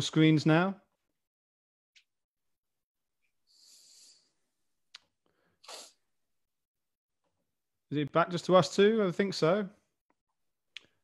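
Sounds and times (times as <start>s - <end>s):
short breathy noise: 3.5s - 4.4s.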